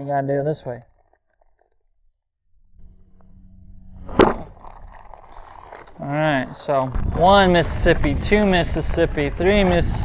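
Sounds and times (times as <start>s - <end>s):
inner seal bursting pop: 4.1s - 4.5s
foam pouch bag rustling: 4.5s - 6.7s.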